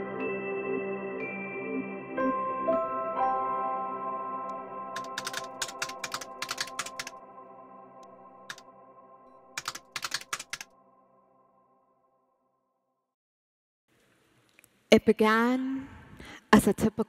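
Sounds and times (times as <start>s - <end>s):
held ambient music chord: 0.0s - 9.9s
computer keyboard typing clicks: 5.0s - 7.1s, 9.6s - 10.6s.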